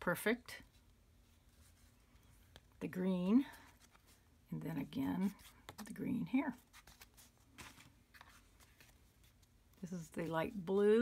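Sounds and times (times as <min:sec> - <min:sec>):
paper cards rustling: 0:00.8 - 0:04.3, 0:05.2 - 0:10.6.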